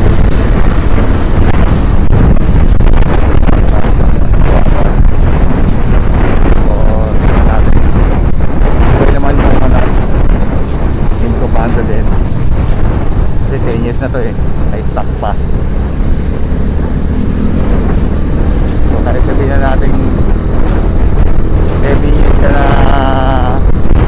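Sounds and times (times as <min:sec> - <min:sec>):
wind rushing on microphone: 0:00.0 - 0:24.0.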